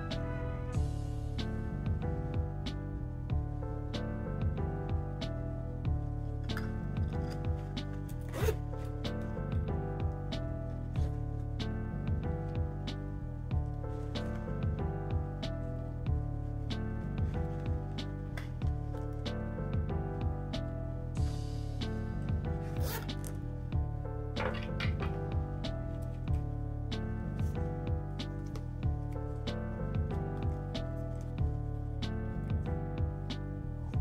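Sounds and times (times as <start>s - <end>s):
background music: 0.0s - 34.0s
metal zipper unzipping: 8.1s - 8.9s, 22.6s - 23.4s.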